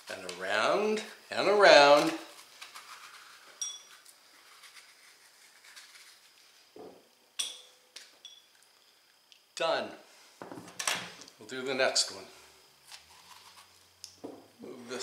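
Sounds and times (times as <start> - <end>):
glass bowl clinking: 3.6 - 4.0, 7.4 - 8.6.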